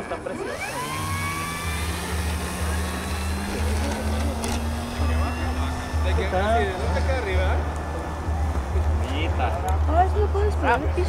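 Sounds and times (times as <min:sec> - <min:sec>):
electric motor and propeller whine: 0:00.0 - 0:11.0.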